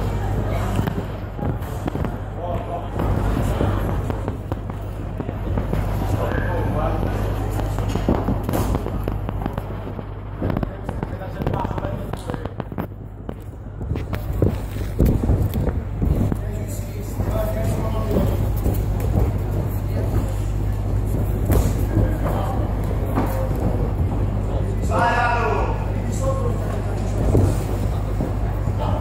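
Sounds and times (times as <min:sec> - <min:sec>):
punches and footwork knocks: 0:00.0 - 0:25.0
crowd voices and shouts: 0:00.0 - 0:29.0.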